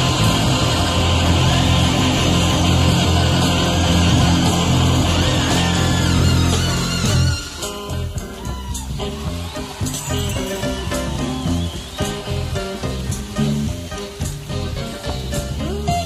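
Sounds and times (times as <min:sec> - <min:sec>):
bass and drums: 0:00.0 - 0:16.0
electric guitar lead lines: 0:00.0 - 0:16.0.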